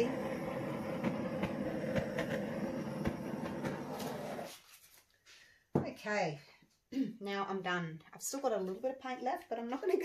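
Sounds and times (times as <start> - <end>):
butane torch flame hissing: 0.0 - 4.7.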